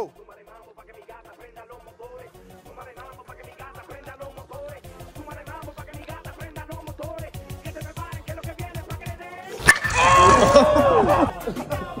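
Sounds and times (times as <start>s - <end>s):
background music: 0.0s - 12.0s
metal bat hitting ball: 9.6s - 10.2s
people shouting: 9.6s - 11.4s.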